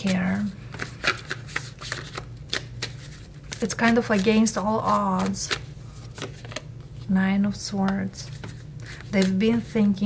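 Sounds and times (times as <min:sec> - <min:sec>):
cards being shuffled: 0:00.0 - 0:07.1, 0:07.8 - 0:10.0.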